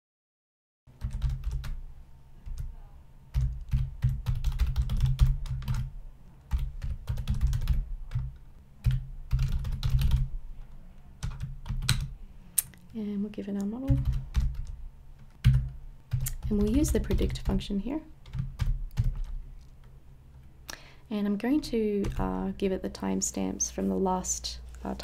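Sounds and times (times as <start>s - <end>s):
typing on computer keyboard: 1.0s - 1.8s, 3.3s - 5.9s, 6.5s - 10.3s, 11.2s - 12.1s, 13.9s - 17.6s, 18.2s - 19.9s.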